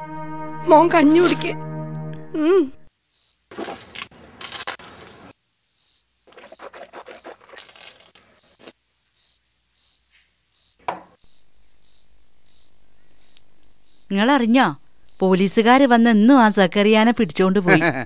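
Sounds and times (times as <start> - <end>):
crickets chirping: 2.9 - 18.0
sharp knock: 10.8 - 11.2.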